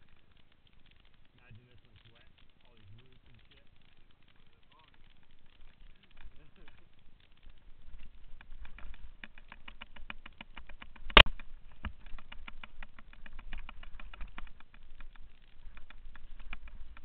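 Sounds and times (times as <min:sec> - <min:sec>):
bike chain and frame clatter: 0:00.0 - 0:17.0.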